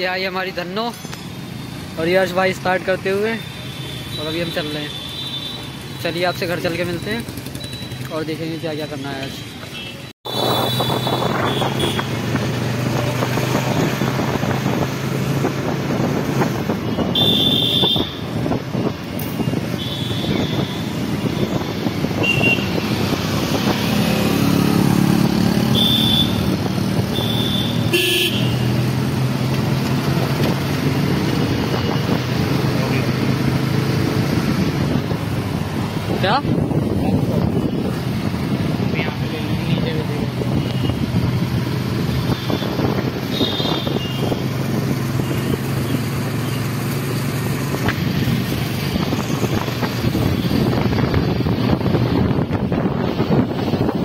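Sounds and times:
road noise: 0.0 - 54.0
vehicle horns tooting: 3.4 - 6.5, 9.7 - 12.2, 16.8 - 18.2, 19.4 - 21.4, 22.2 - 22.8, 25.6 - 28.7, 42.2 - 44.5.

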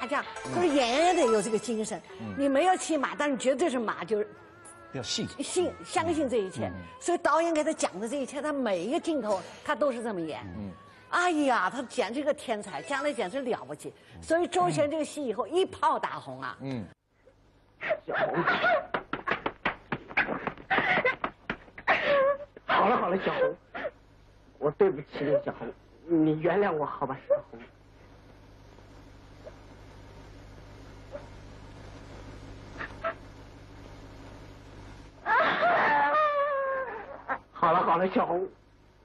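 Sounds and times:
film soundtrack hum and hiss: 0.0 - 39.0
young woman wailing: 35.2 - 37.4.

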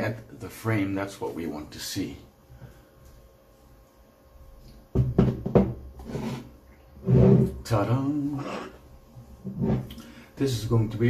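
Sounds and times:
metal frame knocking on desk: 4.9 - 5.8.

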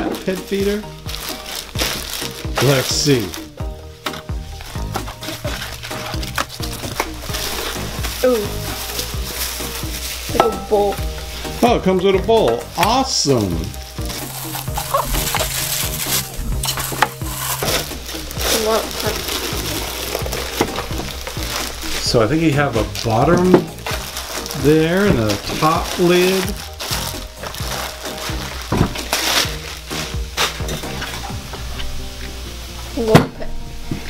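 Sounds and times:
plastic bag crinkling: 0.0 - 3.8, 4.5 - 11.7, 12.7 - 31.4
background music: 0.0 - 34.0.

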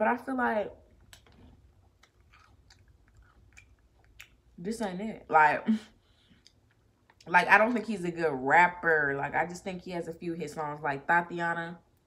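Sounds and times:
chewing cereal: 1.0 - 4.6.

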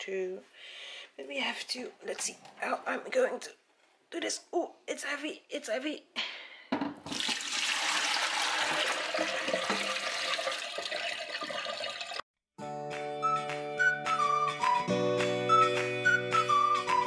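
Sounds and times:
tap running into metal sink: 9.5 - 10.1
background music: 12.6 - 17.0.

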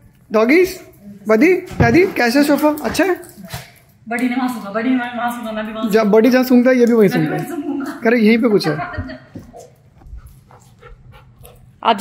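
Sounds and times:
dog panting: 9.4 - 11.9.

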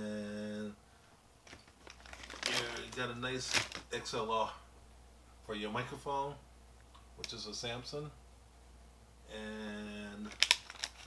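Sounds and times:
man talking: 0.0 - 0.8, 2.4 - 4.7, 5.4 - 6.5, 7.2 - 8.2, 9.3 - 10.4
rustling and small clicks: 1.4 - 3.9, 10.2 - 11.0.

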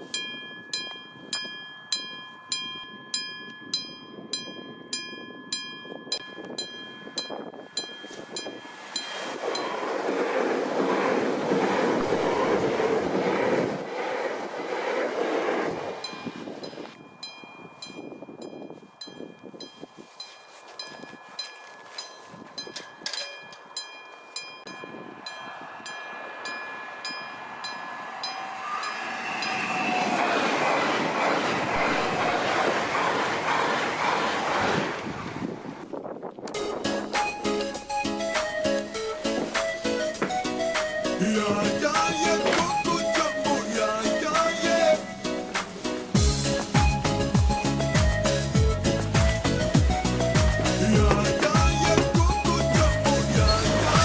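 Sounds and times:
level crossing warning bell: 0.0 - 10.3, 16.0 - 29.6
passenger train passing: 5.2 - 54.0
loud rushing noise: 8.5 - 17.0, 25.0 - 35.8.

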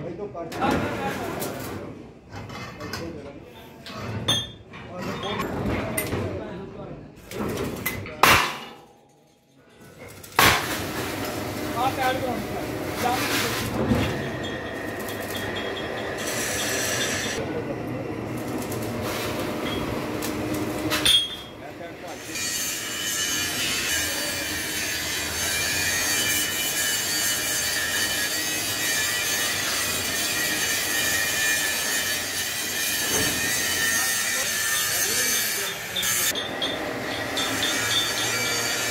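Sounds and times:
sharp bang: 8.2 - 8.9.

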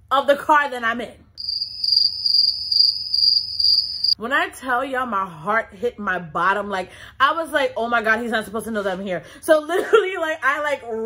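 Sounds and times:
cricket chirping trill: 1.4 - 4.2.

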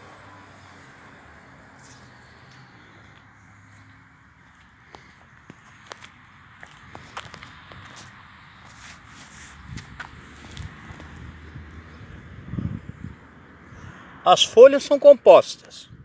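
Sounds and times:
footsteps on concrete: 1.8 - 11.3.

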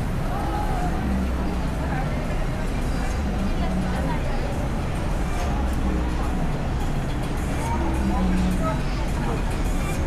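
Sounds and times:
low rumble of traffic: 0.0 - 10.0
passers-by talking: 0.0 - 10.0.

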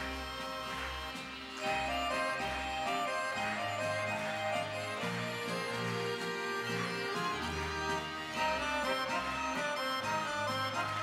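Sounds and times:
instrumental music with bass line: 0.0 - 11.0.

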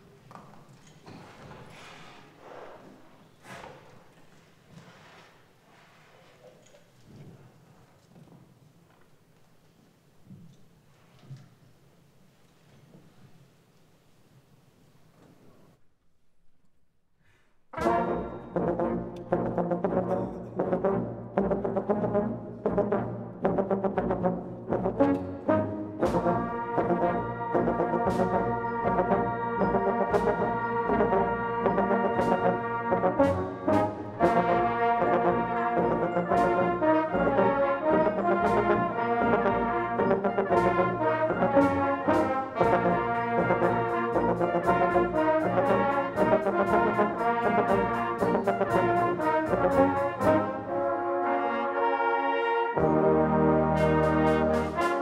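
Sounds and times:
brass band playing: 17.7 - 55.0
drum strikes: 17.8 - 19.0.

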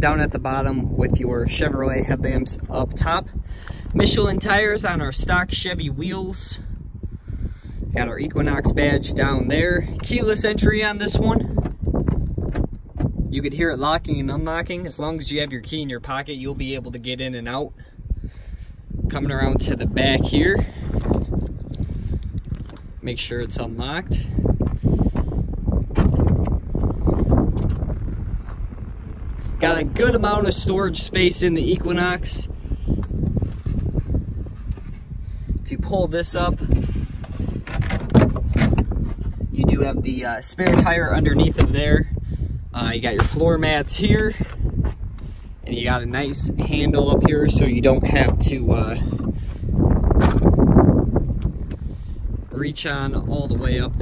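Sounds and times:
steady low rumble: 0.0 - 54.0
wind buffeting microphone: 0.0 - 54.0.

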